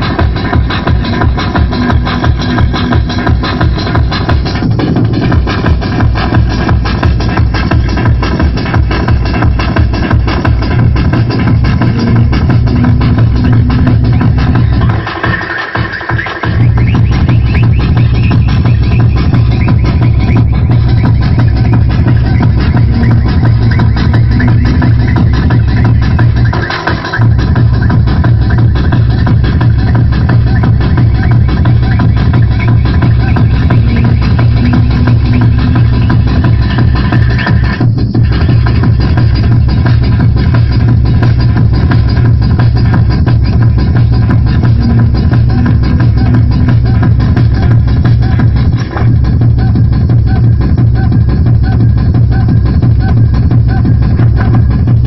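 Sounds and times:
loud techno dance music: 0.0 - 55.0.

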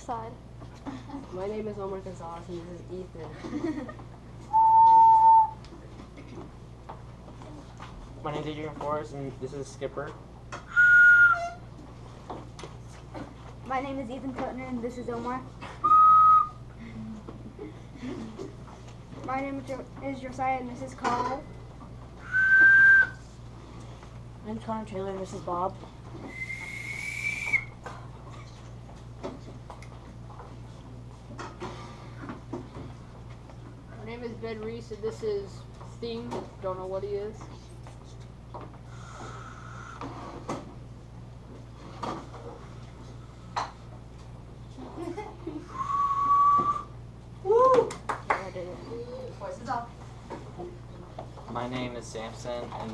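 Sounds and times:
handheld whistle blown: 4.5 - 5.6, 10.7 - 11.6, 15.8 - 16.6, 22.2 - 23.2, 26.2 - 27.8, 45.8 - 46.9.

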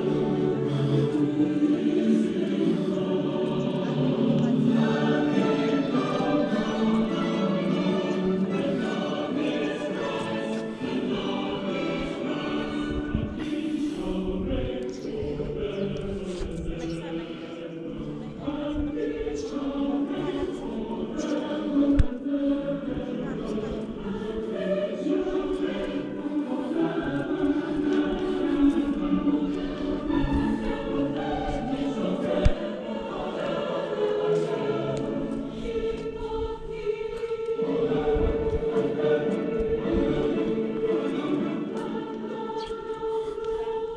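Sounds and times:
choir singing held chords: 0.0 - 43.9.

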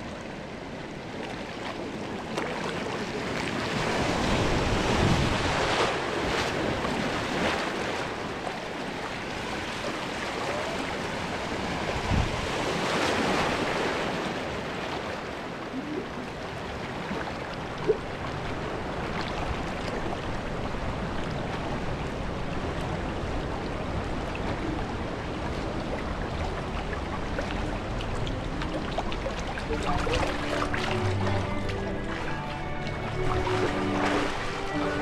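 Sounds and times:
water rushing and splashing: 0.0 - 35.0
wind on the microphone: 1.8 - 8.6, 9.2 - 30.2.

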